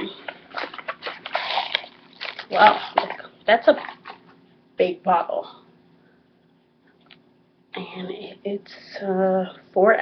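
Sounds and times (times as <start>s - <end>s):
bottle scraping out of carton: 0.6s - 2.3s.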